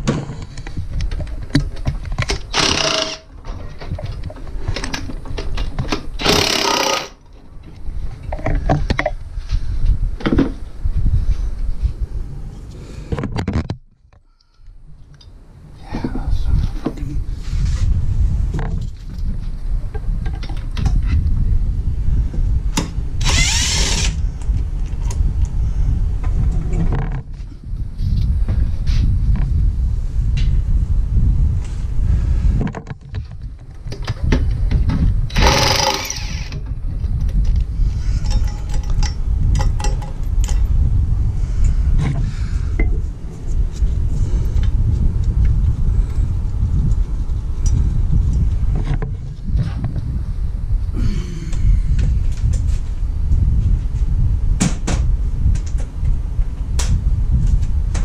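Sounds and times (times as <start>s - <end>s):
tool and parts clicking: 1.0s - 3.3s, 3.9s - 7.2s, 35.3s - 36.7s, 38.2s - 40.6s
impact wrench driving bolt: 2.2s - 3.3s, 6.2s - 7.2s, 35.3s - 36.6s
low rumble: 14.8s - 32.7s, 34.2s - 58.0s.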